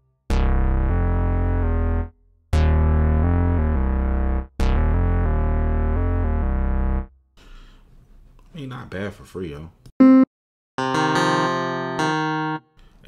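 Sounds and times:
synth bass legato notes: 0.3 - 7.1.

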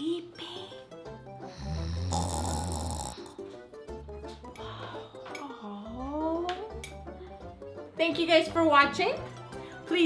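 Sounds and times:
light background music: 0.0 - 10.0
person snoring: 1.4 - 3.5.

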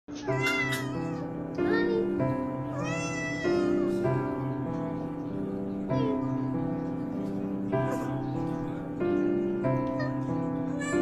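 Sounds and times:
cat meowing: 0.1 - 1.4, 2.7 - 3.9
soft background music: 0.1 - 11.0.

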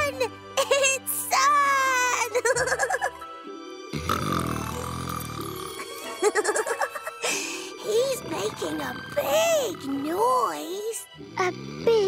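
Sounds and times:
soft background music: 0.0 - 12.0
low rumbly snore: 4.0 - 5.8, 7.8 - 12.0.

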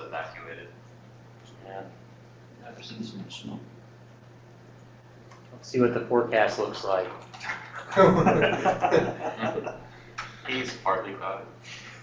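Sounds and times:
indistinct speech in a room: 0.0 - 12.0.

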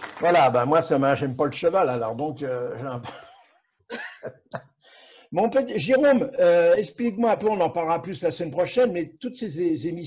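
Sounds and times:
person coughing: 3.9 - 4.3
breathy exhale: 4.8 - 5.3.

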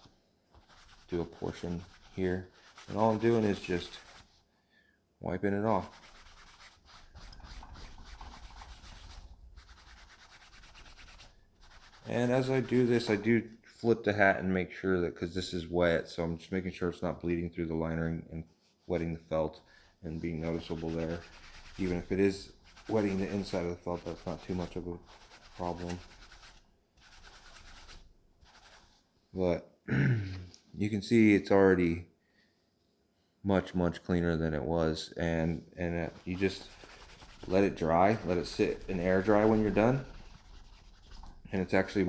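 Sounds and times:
wipe scrubbing fabric: 0.0 - 4.4, 5.6 - 13.3, 19.9 - 29.0, 36.0 - 42.0.

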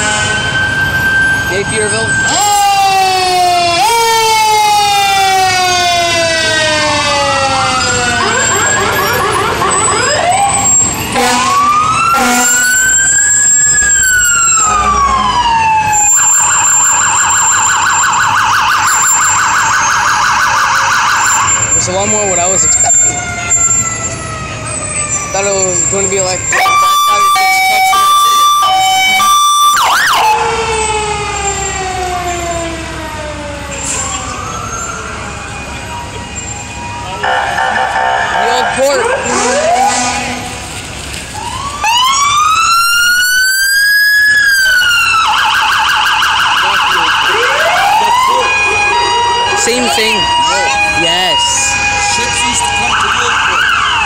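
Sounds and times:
fast warbling siren: 0.0 - 40.8, 41.4 - 54.0
fire vehicle sirens wailing: 0.0 - 54.0
two-tone hi-lo siren: 0.0 - 54.0.

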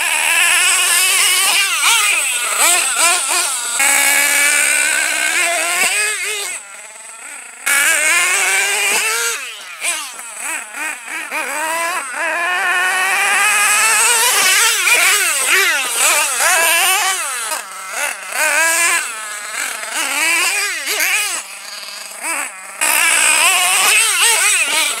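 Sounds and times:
rc nitro engine revving: 0.0 - 25.0.

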